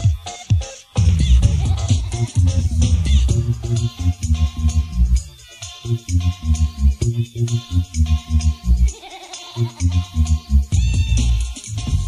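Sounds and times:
heavy beat with dense bass: 0:00.0 - 0:09.0, 0:09.6 - 0:12.0
hardcore rave music: 0:00.0 - 0:12.0
warbling bleat-like sample: 0:08.2 - 0:12.0.

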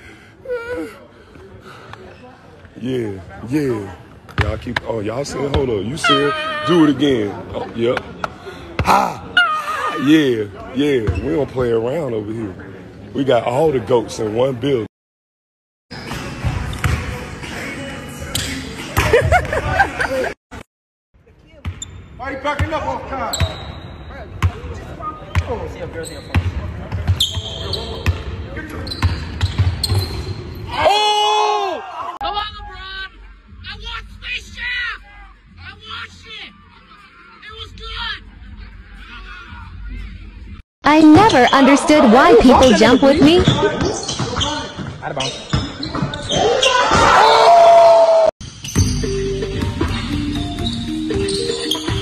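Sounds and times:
voices: 0:40.9 - 0:44.2
basketball bouncing on hardwood floor: 0:43.2 - 0:46.1.

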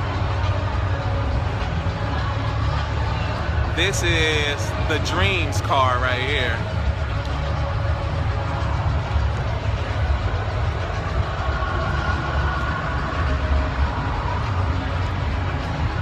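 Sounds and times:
murmur of distant voices: 0:00.0 - 0:16.0
steady low rumble: 0:00.0 - 0:16.0.

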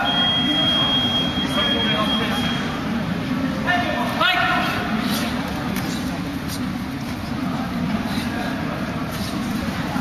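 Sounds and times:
murmur of spectators: 0:00.0 - 0:10.0.

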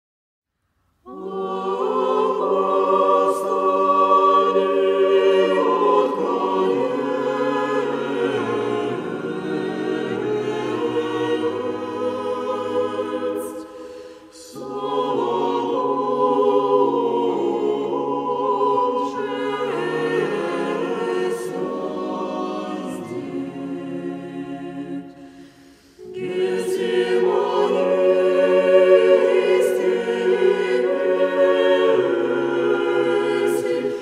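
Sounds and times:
choir singing a cappella chant: 0:01.0 - 0:34.0.

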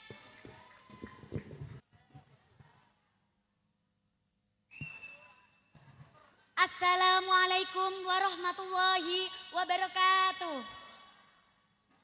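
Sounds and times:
high steady whistling tone: 0:04.7 - 0:05.6.

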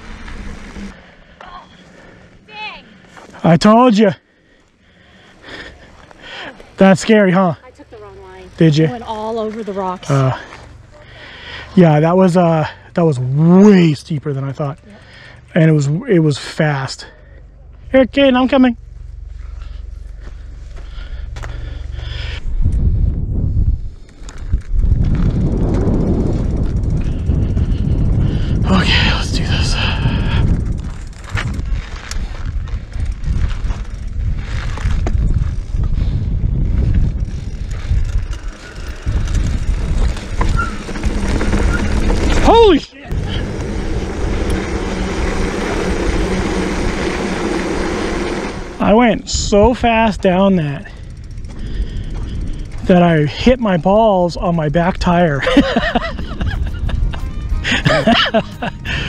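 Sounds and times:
bicycle freehub buzzing: 0:00.0 - 0:03.4, 0:04.2 - 0:59.0
bike rattling: 0:00.0 - 0:59.0
knobby tyres on dirt trail: 0:00.0 - 0:59.0
wind rushing over microphone: 0:21.0 - 0:53.6, 0:54.2 - 0:59.0.

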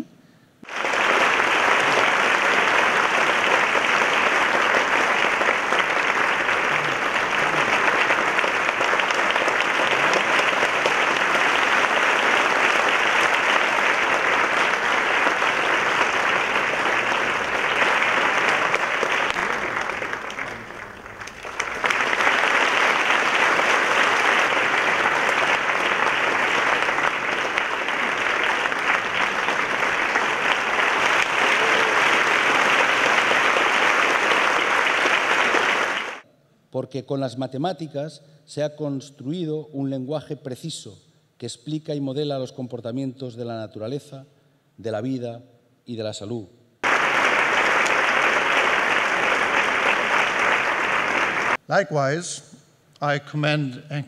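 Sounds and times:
large audience applauding: 0:00.6 - 0:36.2, 0:46.8 - 0:51.6.

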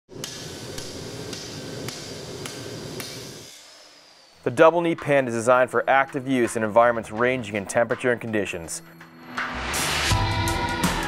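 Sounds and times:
workshop background noise: 0:00.1 - 0:09.2
ringing hammer strikes: 0:04.6 - 0:09.8.

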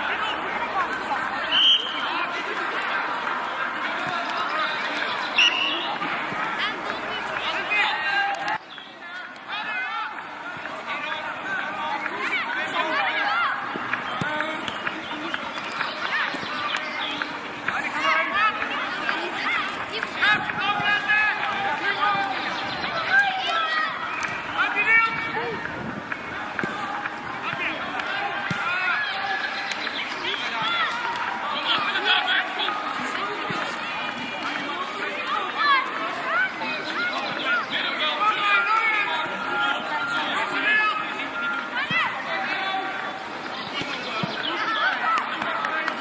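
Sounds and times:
children shouting: 0:11.1 - 0:25.7, 0:26.3 - 0:46.0.

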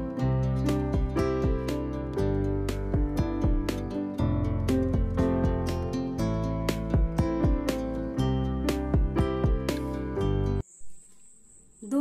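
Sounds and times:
acoustic guitar music: 0:00.0 - 0:10.6.

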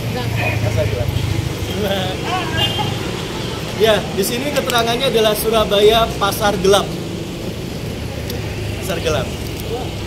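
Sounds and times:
street traffic rumble: 0:00.0 - 0:10.0
man's voice: 0:03.7 - 0:07.0.

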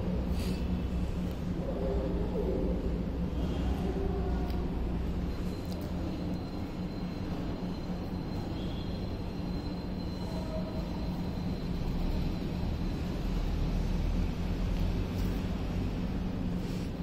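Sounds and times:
faint high whine: 0:00.0 - 0:17.0.

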